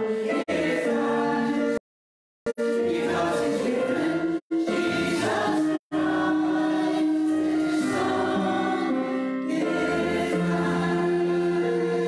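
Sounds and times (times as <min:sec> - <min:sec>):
choir singing a hymn: 0:00.0 - 0:01.8, 0:02.6 - 0:12.0.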